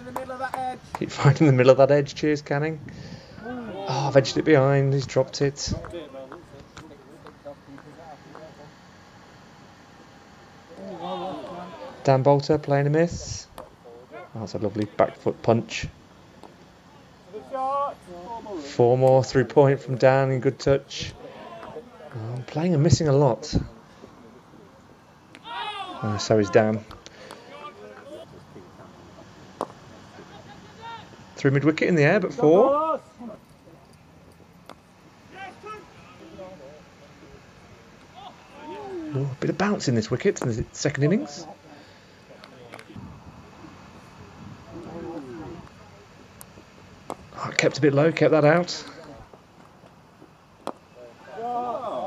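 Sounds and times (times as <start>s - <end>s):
faint distant voices: 3.3s - 52.0s
man calling out loudly: 3.4s - 5.8s, 10.8s - 13.5s, 25.4s - 26.8s, 30.3s - 33.2s, 35.3s - 36.4s.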